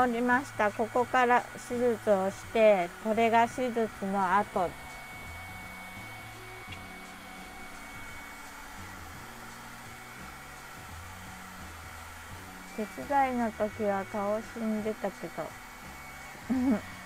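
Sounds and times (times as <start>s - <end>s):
faint background music: 0.0s - 17.0s.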